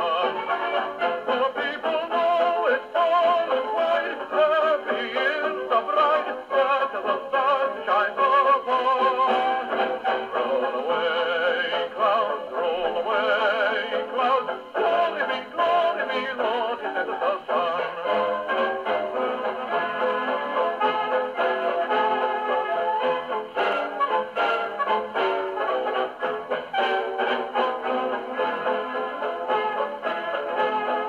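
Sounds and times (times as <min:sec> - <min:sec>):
dance band on gramophone: 0:00.0 - 0:31.0.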